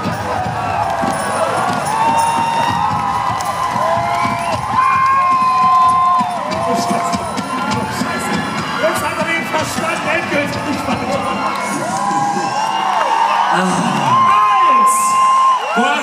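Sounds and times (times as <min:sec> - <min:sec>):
crowd cheering and screaming: 0:00.0 - 0:16.0
crowd clapping: 0:00.0 - 0:16.0.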